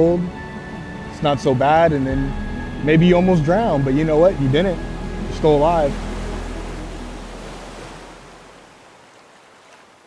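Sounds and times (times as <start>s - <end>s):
ocean surf rushing: 0.0s - 9.8s.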